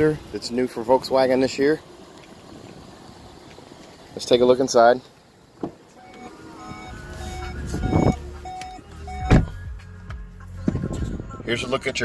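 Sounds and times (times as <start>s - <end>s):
car door shutting thump: 5.6s - 5.8s, 9.2s - 9.6s
held electronic tones: 6.0s - 9.5s.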